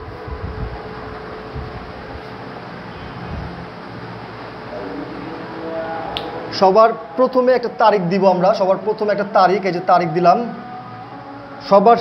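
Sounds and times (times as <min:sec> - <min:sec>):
low rumbles: 0:00.0 - 0:11.6.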